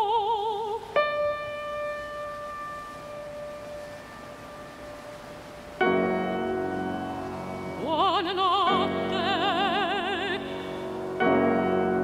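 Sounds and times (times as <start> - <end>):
high piano note ringing: 1.0 - 9.2.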